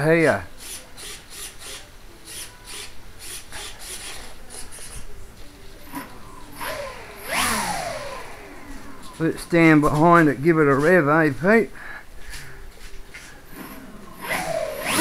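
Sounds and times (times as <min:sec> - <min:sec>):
propeller motors whining: 0:06.3 - 0:09.6.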